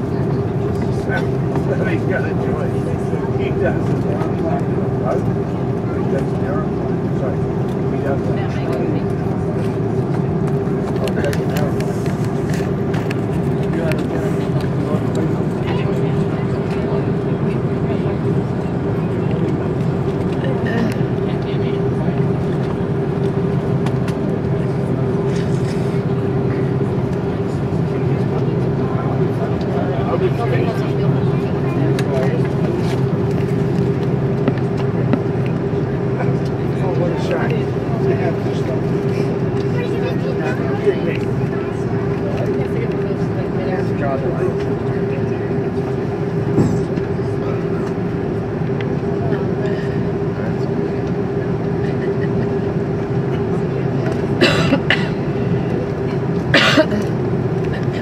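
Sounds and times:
airplane cabin drone: 0:00.0 - 0:58.0
faint passenger voices: 0:00.0 - 0:58.0.

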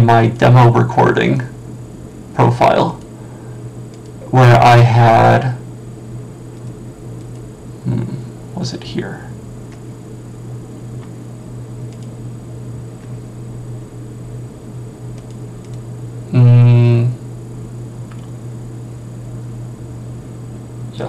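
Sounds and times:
loud buzzy tone: 0:00.0 - 0:15.0, 0:15.9 - 0:19.1
steady low hum: 0:00.0 - 0:21.0.

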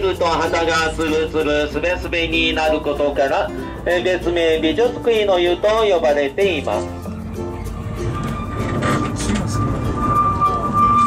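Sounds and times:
high whine: 0:07.0 - 0:11.0
train wheels rumbling on rails: 0:07.7 - 0:11.0.

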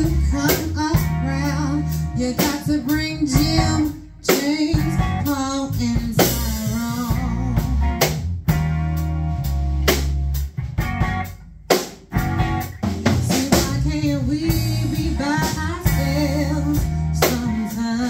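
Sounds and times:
blues band playing: 0:00.0 - 0:18.0
wavering electric guitar lead: 0:00.0 - 0:18.0.

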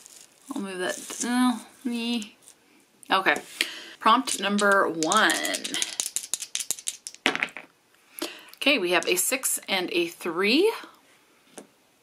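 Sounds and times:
dice clattering into tray: 0:04.0 - 0:07.7
dice rattling in hand: 0:04.0 - 0:07.7.

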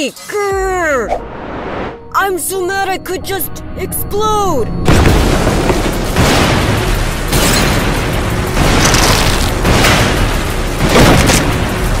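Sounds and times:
large explosion rumbling: 0:04.8 - 0:12.0.

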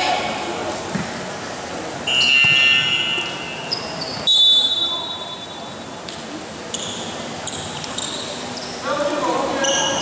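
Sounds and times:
referee's whistle blast: 0:02.0 - 0:05.6.

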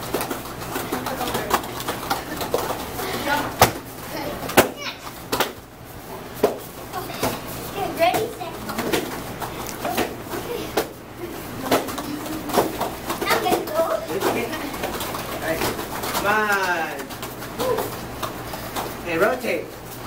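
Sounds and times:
bare feet slapping on a mat: 0:00.0 - 0:20.0.

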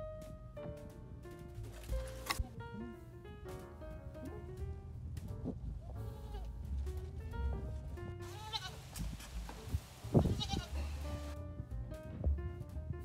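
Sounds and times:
background music: 0:00.0 - 0:13.0
goat bleating: 0:06.1 - 0:06.5, 0:08.2 - 0:09.0, 0:10.2 - 0:11.4.

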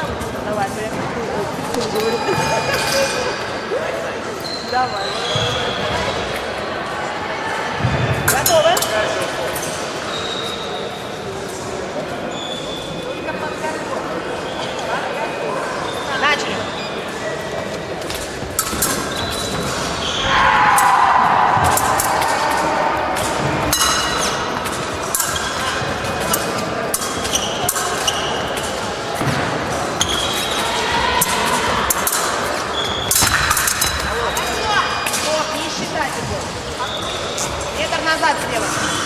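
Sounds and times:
voices in a hall: 0:00.0 - 0:39.0
loud shout: 0:20.2 - 0:23.2.

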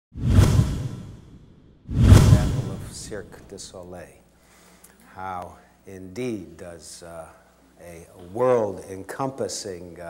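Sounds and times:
whoosh with deep boom: 0:00.2 - 0:03.4.

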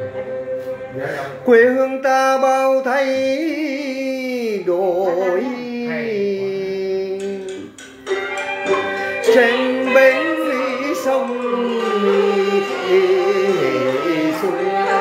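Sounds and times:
person singing slow melody: 0:00.0 - 0:15.0.

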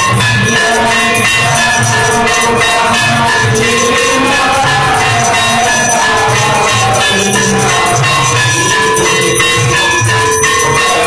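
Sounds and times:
bells ringing: 0:00.0 - 0:11.0
cymbals clashing: 0:00.0 - 0:11.0
drum beating: 0:00.0 - 0:11.0.

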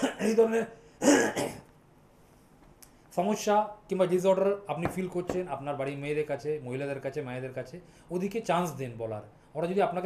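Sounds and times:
man clearing his throat: 0:00.0 - 0:01.7.

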